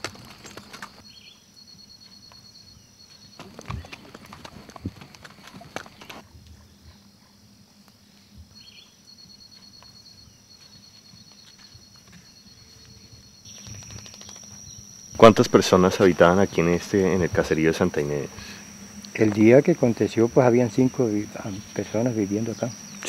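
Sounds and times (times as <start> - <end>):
horse hooves clopping on dirt: 0.0 - 1.0, 3.2 - 7.2, 9.6 - 16.2
high pulsing insect chirp: 0.0 - 23.0.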